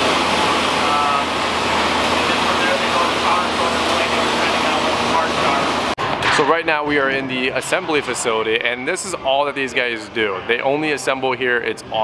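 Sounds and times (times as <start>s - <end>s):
air filter fan humming: 0.0s - 12.0s.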